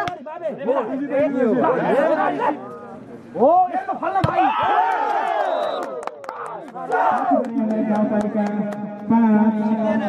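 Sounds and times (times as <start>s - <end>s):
spectators shouting and cheering: 4.2s - 7.4s.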